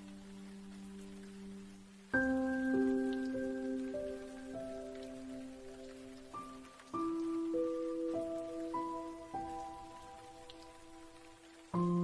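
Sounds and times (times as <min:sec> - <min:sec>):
falling rain: 0:00.0 - 0:12.0
slow piano melody: 0:00.0 - 0:12.0.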